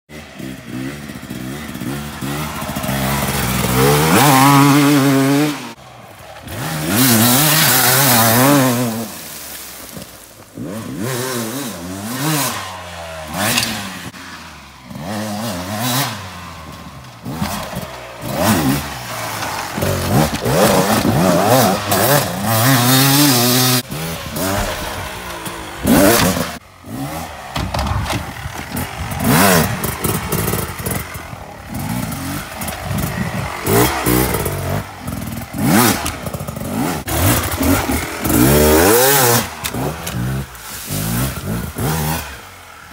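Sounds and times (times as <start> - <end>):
motorcycle engine revving: 0.1 - 42.9.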